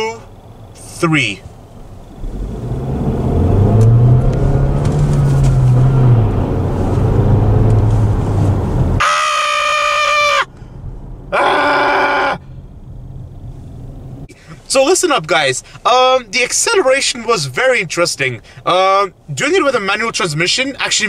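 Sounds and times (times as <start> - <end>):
car engine revving hard: 2.1 - 9.0.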